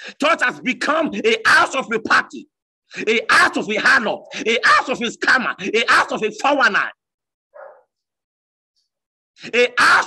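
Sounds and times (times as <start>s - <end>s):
faint dog bark: 7.5s - 8.0s.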